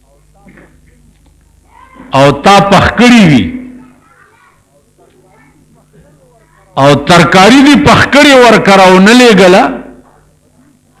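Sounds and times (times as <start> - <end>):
steady low hum: 0.0 - 11.0
man speaking: 2.1 - 3.8, 6.8 - 10.0.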